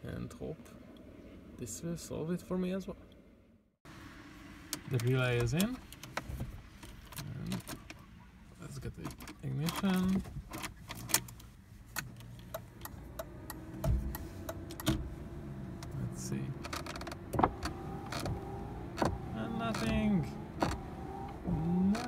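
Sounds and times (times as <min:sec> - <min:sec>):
sharp clicks of car controls: 0:09.0 - 0:22.0
windshield wipers moving: 0:09.0 - 0:22.0.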